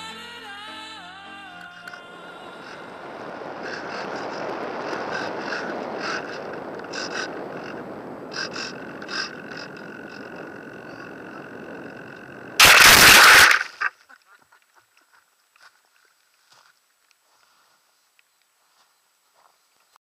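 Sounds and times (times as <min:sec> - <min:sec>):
faint steady whine: 0:00.0 - 0:14.6
air rushing past: 0:02.1 - 0:13.7
model plane crashing into grass: 0:12.6 - 0:13.9.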